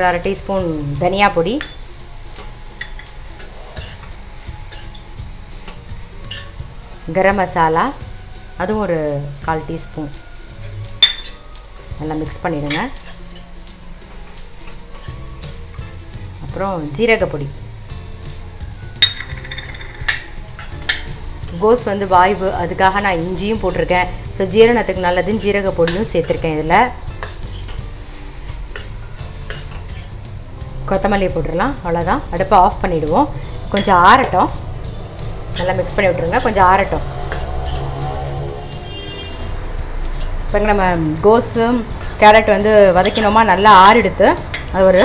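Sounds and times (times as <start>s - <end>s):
light sizzle: 0.0s - 45.0s
metal spoon scraping a pan: 2.4s - 6.6s, 10.5s - 11.5s, 12.6s - 15.9s, 19.0s - 21.9s, 22.8s - 30.2s, 33.3s - 39.6s, 42.9s - 45.0s
steel spoon clinking on pan: 2.8s - 3.1s, 11.0s - 11.4s, 19.0s - 21.1s.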